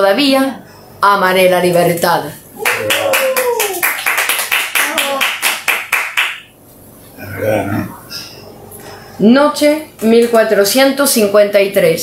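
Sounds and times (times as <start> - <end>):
quick hand clapping: 2.6 - 6.5.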